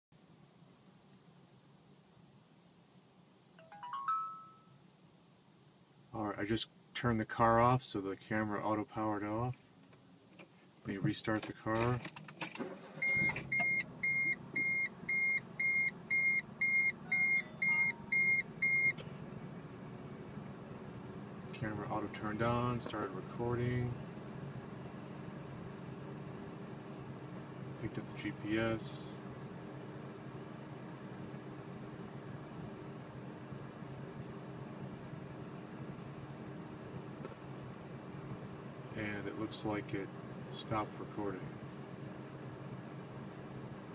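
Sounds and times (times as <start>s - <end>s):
high-pitched electronic chime beeps: 3.6s - 4.8s, 16.9s - 18.8s
ventilation fan running: 10.9s - 43.9s
car engine starting and idling: 11.0s - 43.9s
car engine idling: 18.0s - 28.4s.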